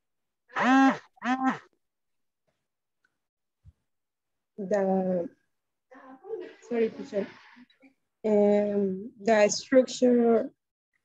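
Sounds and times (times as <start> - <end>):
person's drawn-out vocal sounds: 0.5 - 1.7.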